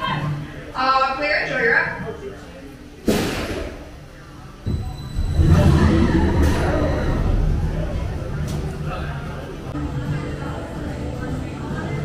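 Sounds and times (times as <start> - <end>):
voices: 3.8 - 12.0
roller coaster rumbling on track: 4.7 - 9.8.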